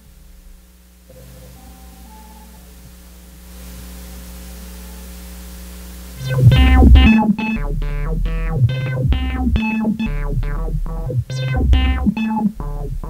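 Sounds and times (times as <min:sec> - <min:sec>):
electronic drone: 0:06.2 - 0:13.0.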